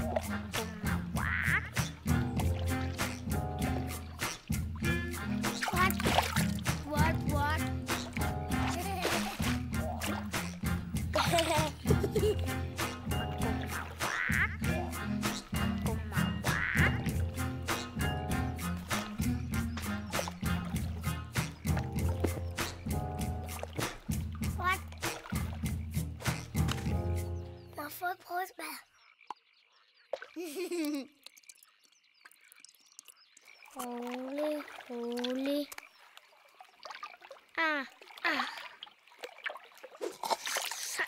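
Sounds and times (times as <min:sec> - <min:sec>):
cartoon frog croaking: 0:00.0 - 0:02.2, 0:13.4 - 0:18.0
cartoon frogs singing: 0:00.0 - 0:23.6
high frog cries: 0:01.1 - 0:01.9, 0:13.6 - 0:14.8, 0:16.2 - 0:17.1.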